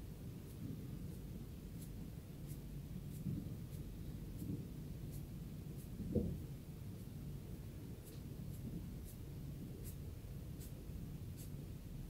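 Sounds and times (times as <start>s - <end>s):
fingertips rubbing shaved scalp: 8.0s - 11.6s.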